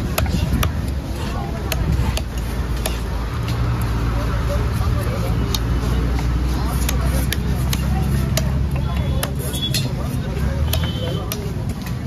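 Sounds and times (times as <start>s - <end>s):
cleaver chopping on wood: 0.0s - 3.6s, 5.5s - 12.0s
voices: 0.0s - 12.0s.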